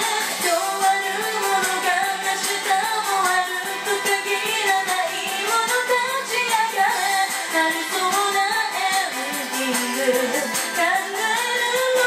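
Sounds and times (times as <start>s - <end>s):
backing track with steady beat: 0.0s - 12.0s
woman singing pop song: 0.0s - 12.0s.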